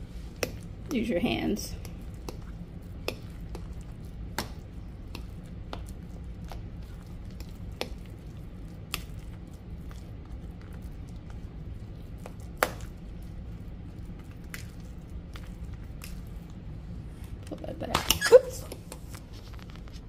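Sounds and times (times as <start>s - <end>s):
low steady hum: 0.0s - 20.0s
soft wet squishing: 0.0s - 20.0s.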